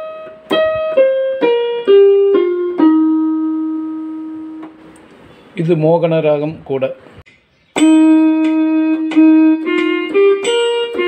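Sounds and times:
keyboard piano note held: 7.7s - 11.0s.

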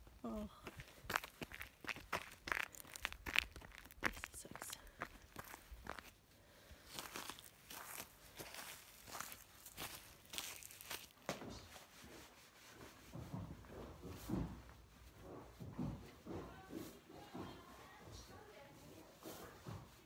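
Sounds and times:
boots crunching on frosty grass: 0.8s - 6.2s, 6.8s - 11.3s.

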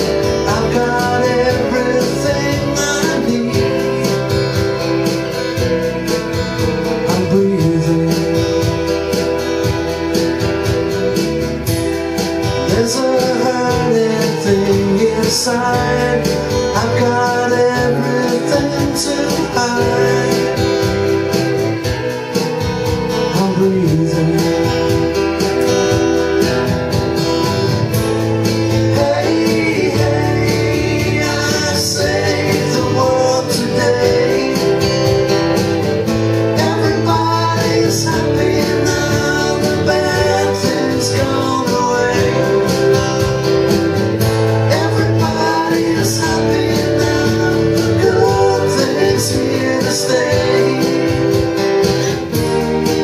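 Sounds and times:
man singing: 0.0s - 11.3s, 12.0s - 26.7s, 27.9s - 53.0s
acoustic guitar strumming: 0.0s - 53.0s.

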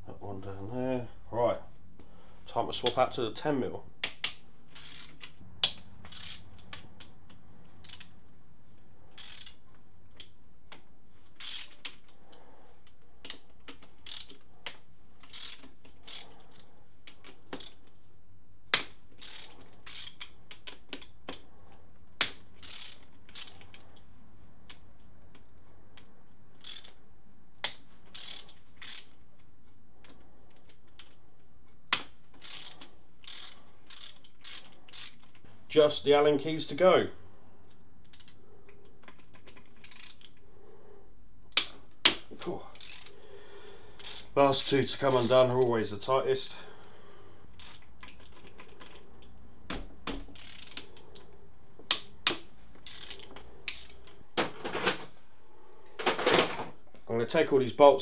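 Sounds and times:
socket ratchet clicking: 4.0s - 8.2s, 9.1s - 12.1s, 12.8s - 17.9s, 18.7s - 21.4s, 22.2s - 23.8s, 26.5s - 27.0s, 27.6s - 29.5s, 31.9s - 35.4s, 38.0s - 40.4s, 42.8s - 43.2s, 44.0s - 44.4s, 47.6s - 49.4s, 50.2s - 51.3s, 51.9s - 54.0s.

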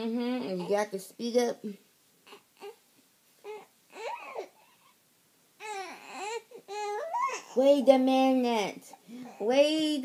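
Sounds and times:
baby fussing and whimpering: 0.0s - 1.1s, 2.2s - 5.0s, 5.6s - 7.9s, 8.8s - 9.7s.

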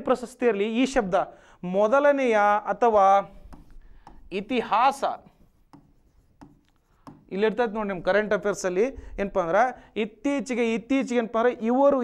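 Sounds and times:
stylus scratching and tapping screen: 2.8s - 8.9s.

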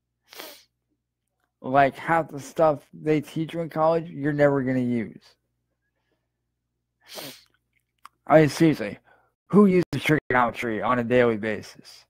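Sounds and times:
man's breathy vocal burst: 7.0s - 7.5s.

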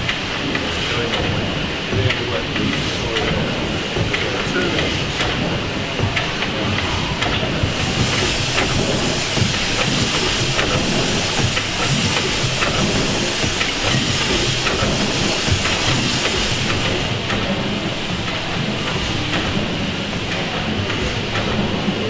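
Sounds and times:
steam hiss: 0.0s - 22.0s.

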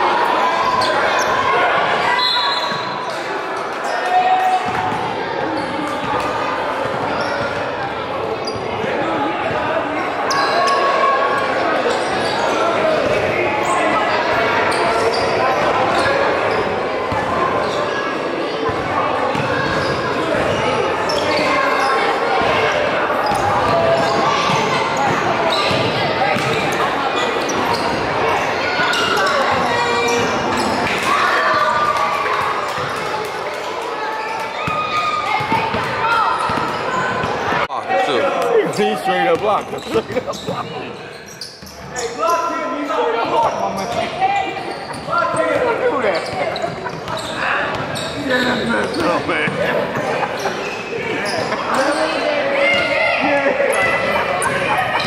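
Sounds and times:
indistinct voices echoing: 0.0s - 55.0s.

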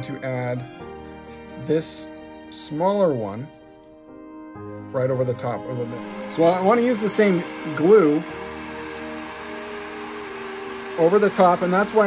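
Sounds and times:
heat gun fan hum: 5.8s - 12.0s.

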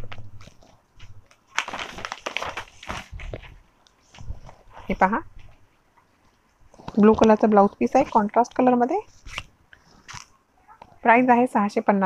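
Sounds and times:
paper crinkles: 0.0s - 5.6s, 6.3s - 10.4s
fabric rustling: 0.0s - 11.1s.

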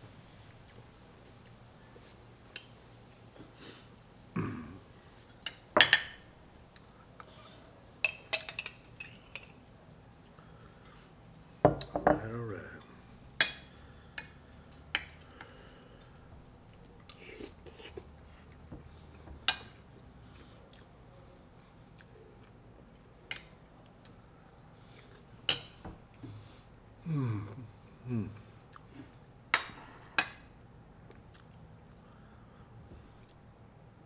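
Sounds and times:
cutlery clinking on glass: 8.0s - 9.5s
short low vocal sound: 27.0s - 28.5s.

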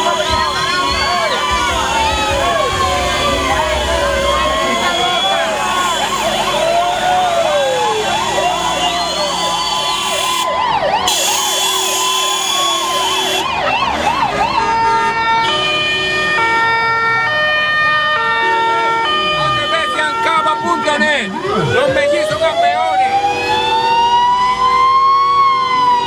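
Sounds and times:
steady stepping tune notes: 0.0s - 6.2s
vehicle sirens wailing: 0.0s - 26.0s.

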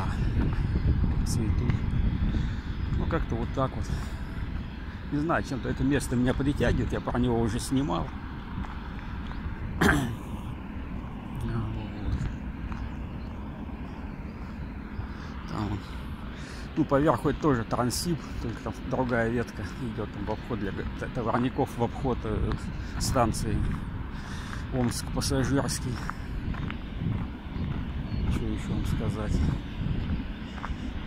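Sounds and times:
faint footsteps on gravel: 0.0s - 31.0s
low rumble: 0.0s - 31.0s
wind buffeting microphone: 0.0s - 31.0s.

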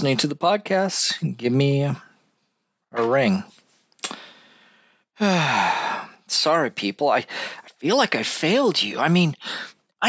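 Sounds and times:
person sighing: 4.0s - 6.2s.

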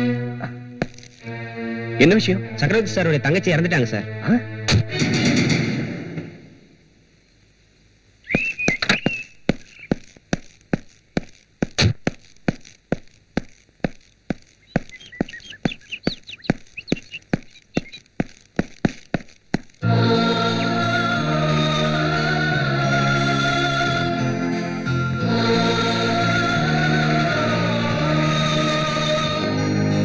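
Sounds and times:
short bird chirps: 8.2s - 9.9s, 14.6s - 18.0s.

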